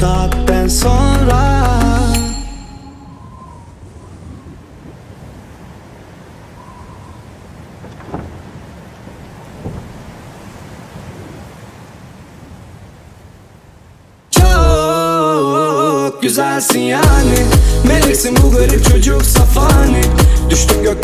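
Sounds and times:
wind: 0:00.0 - 0:21.0
rain: 0:03.9 - 0:14.4
sharp thumps: 0:07.8 - 0:08.6.

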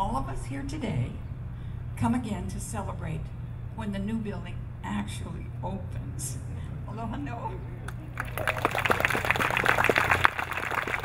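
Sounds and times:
steady low hum: 0:00.0 - 0:11.0
audience applauding: 0:07.9 - 0:11.0.

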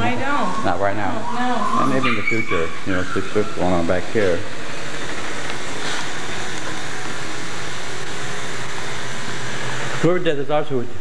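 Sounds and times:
machine rushing noise: 0:00.0 - 0:10.6.

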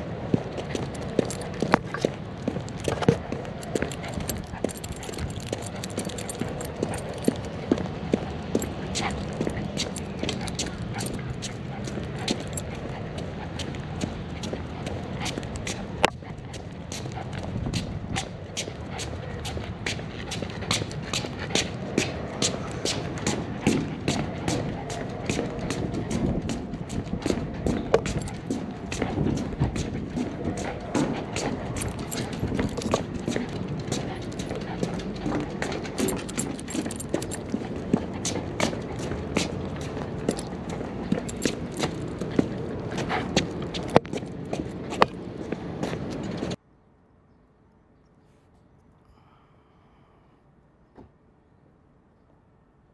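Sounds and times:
running footsteps: 0:00.0 - 0:46.6.

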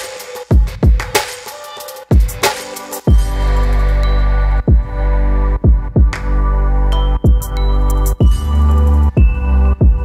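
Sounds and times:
synth chords: 0:02.9 - 0:10.0
deep bass: 0:03.1 - 0:10.0.

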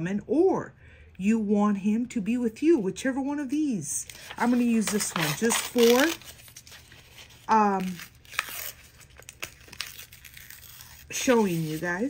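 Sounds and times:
paper rustling and crinkling: 0:04.0 - 0:12.0.

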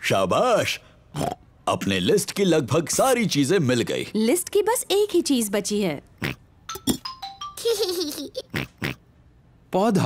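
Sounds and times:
piglet snorts: 0:08.5 - 0:09.0.

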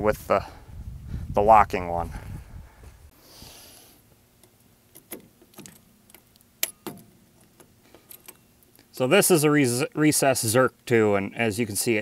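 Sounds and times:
small metallic clicks and clinks: 0:05.0 - 0:08.8.

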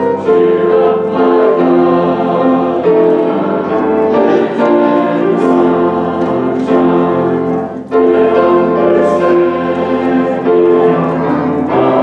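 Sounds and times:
group singing a hymn: 0:00.0 - 0:12.0
piano accompaniment: 0:00.0 - 0:12.0.

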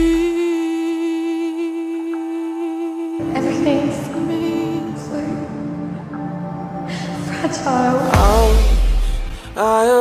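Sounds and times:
song accompaniment: 0:00.0 - 0:10.0.

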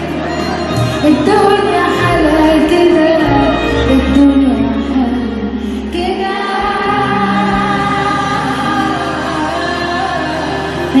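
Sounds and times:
orchestra playing: 0:00.0 - 0:11.0
woman singing: 0:00.0 - 0:11.0.

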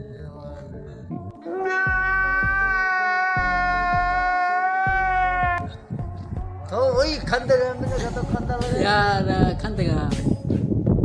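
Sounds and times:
man crying wail: 0:01.4 - 0:05.6
music with thumping beat: 0:03.4 - 0:11.0.

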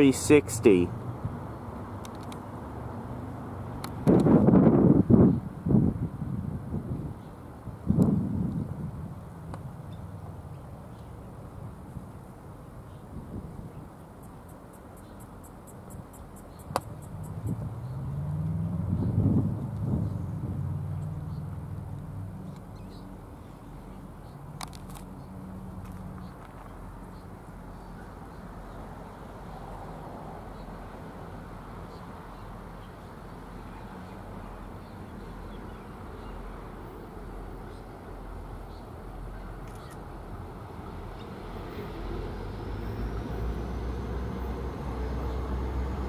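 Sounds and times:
diesel locomotive engine drone: 0:00.0 - 0:46.0.

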